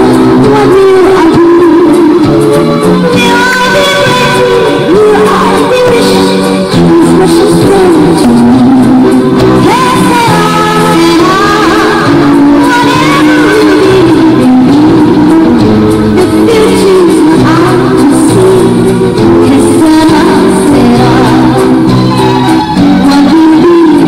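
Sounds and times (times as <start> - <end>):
song with singing voice: 0.0 - 24.0.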